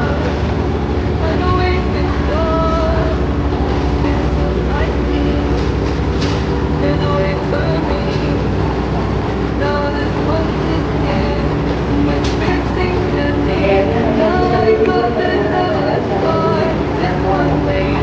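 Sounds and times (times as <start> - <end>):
diesel train idling: 0.0 - 18.0
people's voices: 0.0 - 18.0.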